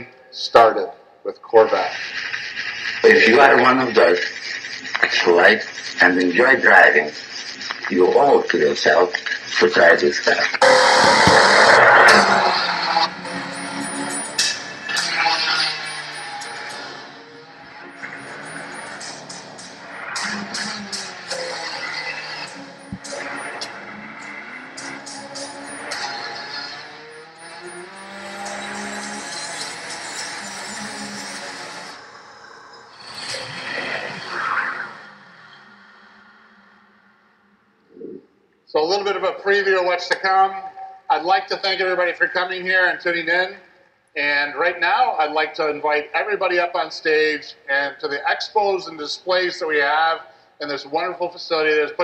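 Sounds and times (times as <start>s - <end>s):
car sounds: 10.6s - 38.2s.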